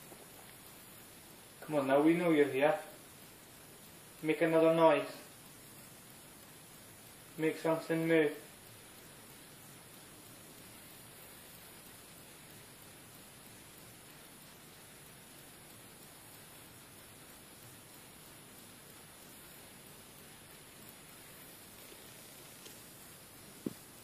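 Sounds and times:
faint high whine: 0.0 - 24.0
steady hiss: 0.0 - 24.0.

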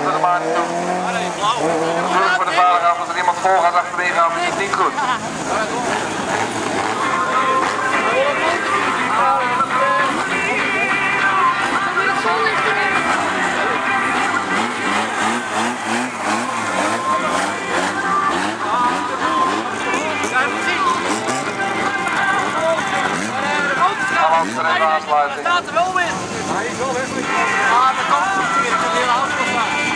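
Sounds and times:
music over loudspeakers: 0.0 - 29.9
race car engines revving: 0.0 - 29.9
voice over loudspeakers: 0.0 - 29.9.

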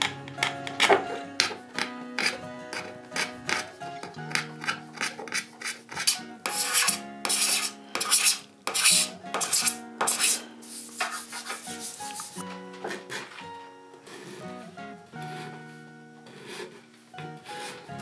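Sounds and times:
background music: 0.0 - 18.0
card scraper on wood: 0.4 - 3.7, 4.3 - 12.4.

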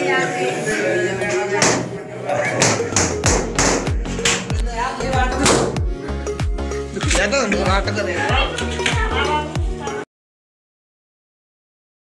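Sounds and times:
dance music: 0.0 - 10.0.

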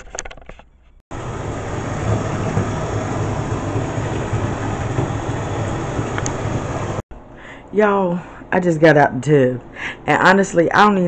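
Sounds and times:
tap water running into bathtub: 1.2 - 7.0.

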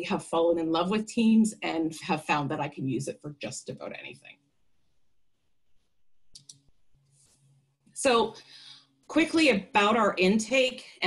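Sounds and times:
computer mouse clicks: 6.3 - 6.7.

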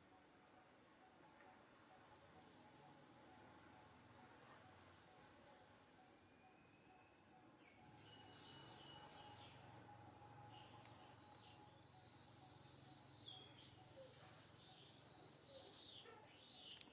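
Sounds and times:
faint high-pitched chirps: 0.0 - 16.9.

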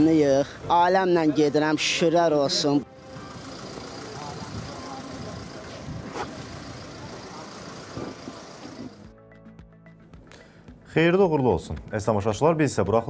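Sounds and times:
murmur of people: 0.0 - 9.0
vehicle engine running: 3.0 - 9.1.

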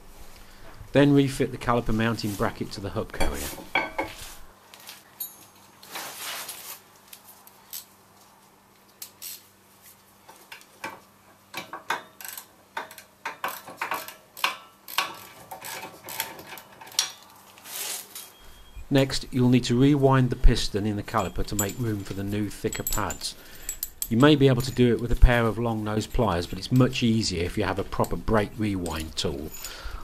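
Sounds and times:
metallic clicks of tools: 10.5 - 17.4, 21.1 - 25.3, 28.0 - 29.8.

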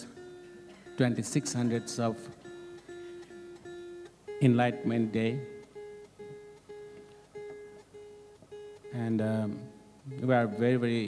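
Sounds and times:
plucked string instrument: 0.0 - 11.0.

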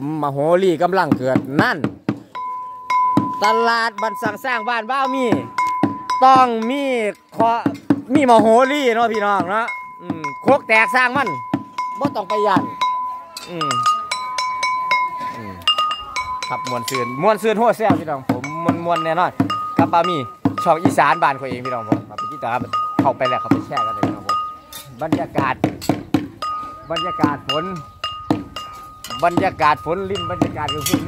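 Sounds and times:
man talking: 0.0 - 1.9, 3.3 - 14.0, 15.2 - 15.7, 16.4 - 25.8, 26.8 - 27.9, 29.1 - 31.0
struck metal notes ringing: 2.2 - 31.0
person singing: 10.0 - 10.4, 13.1 - 14.1.

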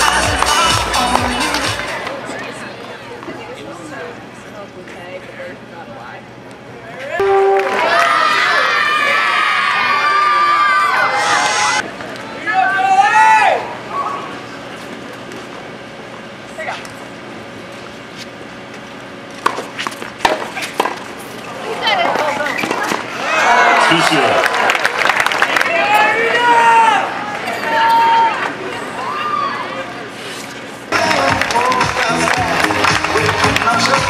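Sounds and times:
crowd cheering and shouting: 7.1 - 14.3, 23.1 - 30.1
sharp claps: 31.0 - 34.0.

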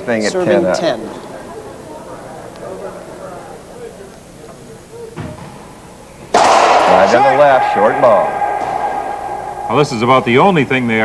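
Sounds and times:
loud burst of noise: 6.3 - 11.0.

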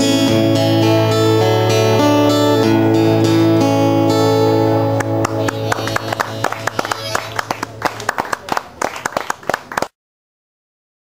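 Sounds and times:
small audience applause: 5.0 - 10.0.

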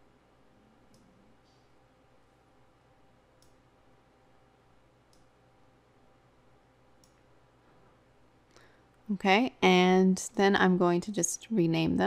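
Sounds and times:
faint computer mouse clicks: 5.1 - 5.3, 7.0 - 7.2.

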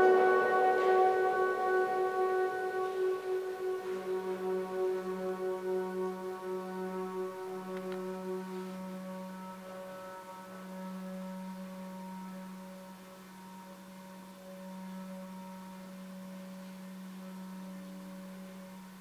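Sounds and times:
orchestra playing soft sustained notes: 0.0 - 19.0.

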